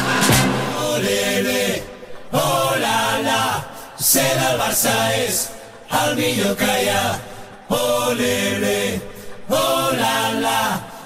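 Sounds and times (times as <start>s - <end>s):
voices chanting: 0.0s - 11.0s.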